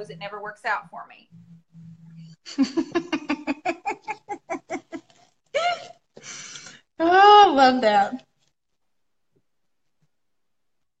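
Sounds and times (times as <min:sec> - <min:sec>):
woman laughing: 0:02.5 - 0:06.0.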